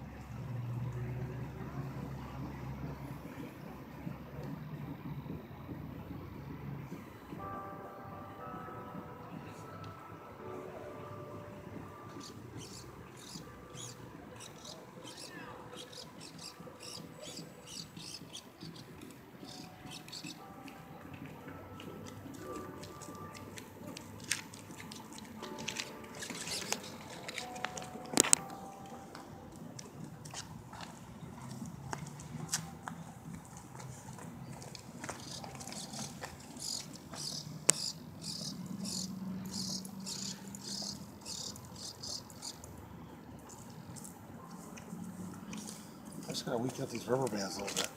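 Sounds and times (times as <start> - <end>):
small birds chirping: 12.1 - 20.5, 34.4 - 42.8.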